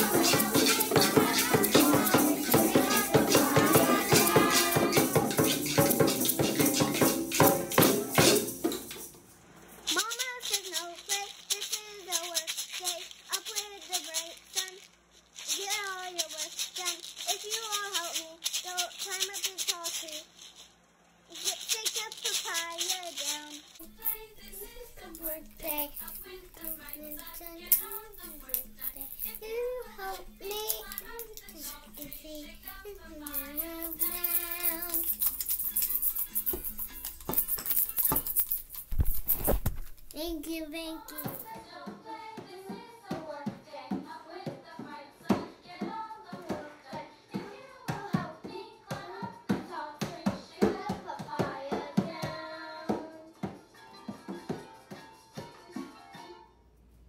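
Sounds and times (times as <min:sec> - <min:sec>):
young child singing: 0:00.0 - 0:08.2, 0:09.9 - 0:14.8, 0:15.5 - 0:20.2, 0:21.3 - 0:35.2, 0:40.1 - 0:53.4
egg shakers shaken: 0:00.0 - 0:41.8.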